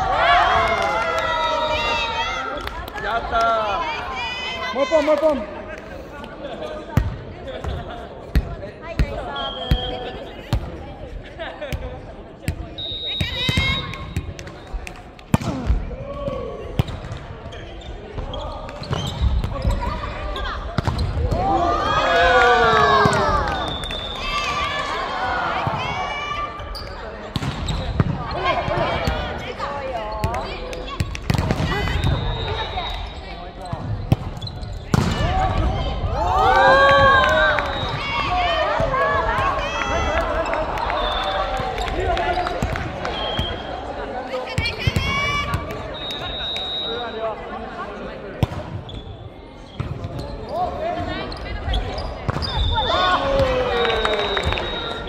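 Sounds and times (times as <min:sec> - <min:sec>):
players shouting: 0:21.2 - 0:26.6, 0:35.0 - 0:46.6, 0:52.7 - 0:55.0
volleyball smacks: 0:34.9 - 0:35.3.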